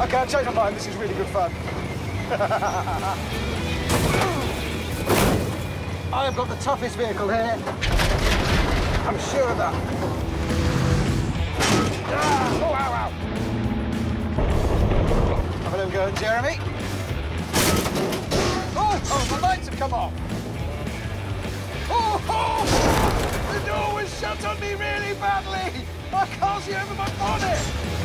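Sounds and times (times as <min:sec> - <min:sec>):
truck engine running: 0:00.0 - 0:21.9
music: 0:00.0 - 0:28.0.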